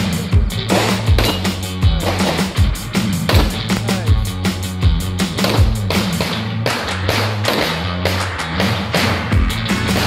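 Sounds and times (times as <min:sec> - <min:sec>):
music with drum beat and bass: 0:00.0 - 0:10.0.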